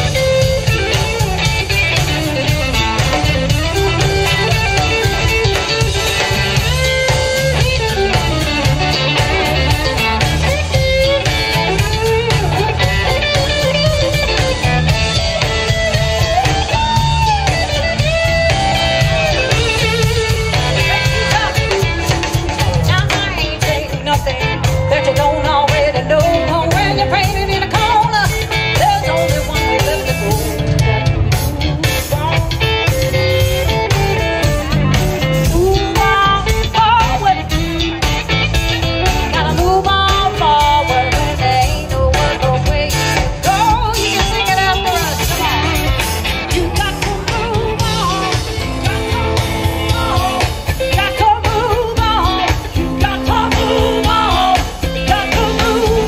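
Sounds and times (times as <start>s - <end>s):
drums: 0.0s - 56.0s
electric bass: 0.0s - 56.0s
electric guitar lead: 0.0s - 56.0s
live blues band playing: 0.0s - 56.0s.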